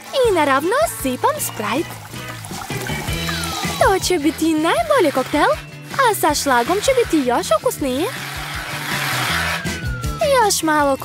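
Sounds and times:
light background music: 0.0s - 11.0s
thin falling whistle: 9.5s - 10.4s.

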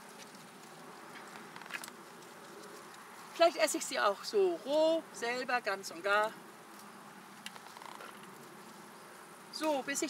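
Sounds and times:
faint outdoor background: 0.0s - 10.0s
leaves crackling: 0.0s - 10.0s
rustling bush leaves and twigs: 0.0s - 10.0s.

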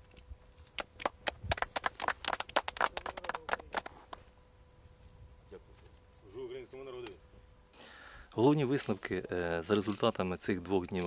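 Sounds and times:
people clapping: 0.7s - 4.2s.

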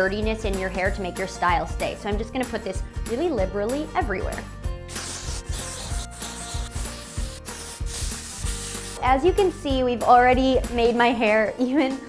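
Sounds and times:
background music with steady beat: 0.0s - 12.0s
aerosol spray hissing in bursts: 4.9s - 9.2s.

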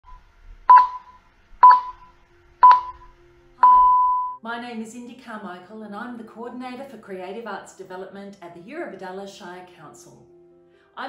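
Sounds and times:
electronic beeps: 0.1s - 4.4s.

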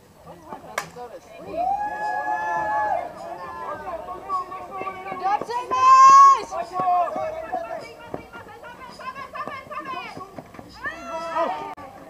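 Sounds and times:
people calling out and chatting: 0.0s - 12.0s.

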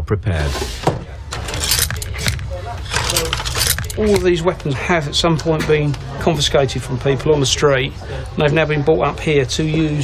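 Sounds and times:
metal knives clinking: 1.4s - 4.4s.

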